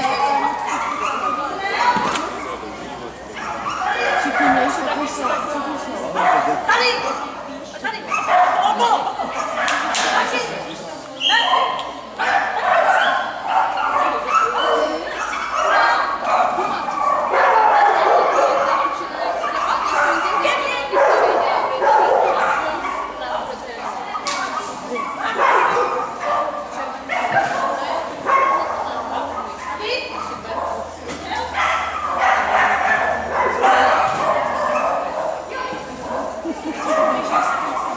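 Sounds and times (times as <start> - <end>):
dogs barking and yipping: 0.0 - 7.4, 8.0 - 10.6, 11.2 - 37.9
voices: 0.0 - 37.9.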